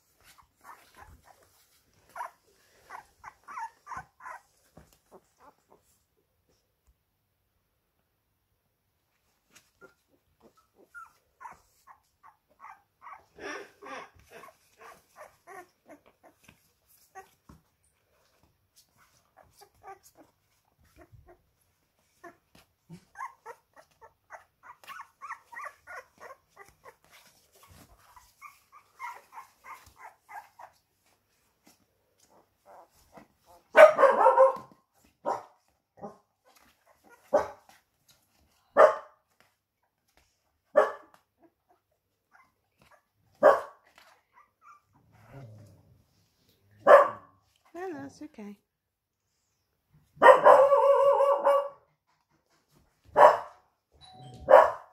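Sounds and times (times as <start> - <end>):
puppies squeaking and whimpering: 0.0 - 5.8, 9.7 - 17.4, 19.0 - 30.8, 36.5 - 37.3, 43.9 - 45.0
sharp barks or yelps: 33.8 - 34.7, 40.8 - 41.0, 46.8 - 47.3, 50.2 - 51.8, 53.2 - 53.5, 54.5 - 54.9.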